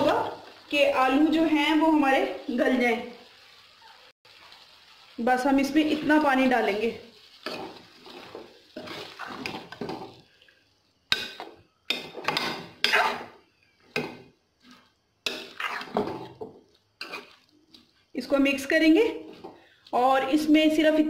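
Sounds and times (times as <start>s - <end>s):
metal ladle scraping a pot: 15.3s - 16.2s.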